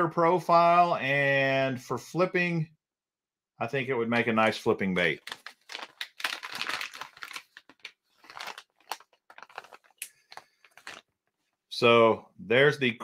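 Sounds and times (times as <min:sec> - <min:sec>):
plastic package crinkling: 0:05.1 - 0:11.4.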